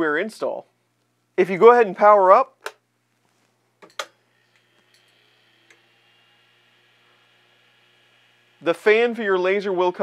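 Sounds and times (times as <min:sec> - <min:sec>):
printer cooling fan whine: 0:03.8 - 0:10.0.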